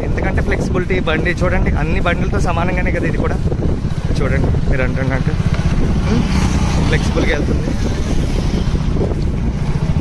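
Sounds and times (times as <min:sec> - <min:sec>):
wind and road noise: 0:00.0 - 0:10.0
person speaking: 0:04.3 - 0:08.1.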